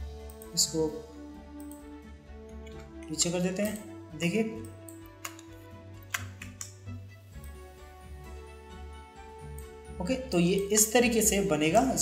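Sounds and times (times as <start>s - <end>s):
quiet background music: 0.0s - 12.0s
computer keyboard key clicks: 4.8s - 5.5s, 6.1s - 6.8s.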